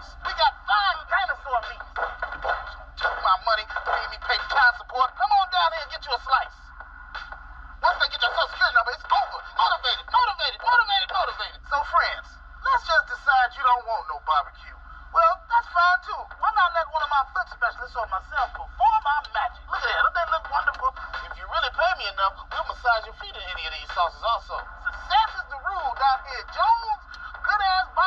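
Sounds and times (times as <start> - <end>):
faint low hum: 0.0 - 28.0
speech through laptop speaker: 0.0 - 28.0.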